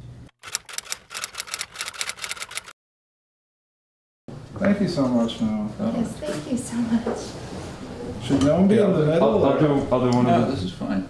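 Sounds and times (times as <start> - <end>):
rapid sharp clicks: 0.4 - 2.8.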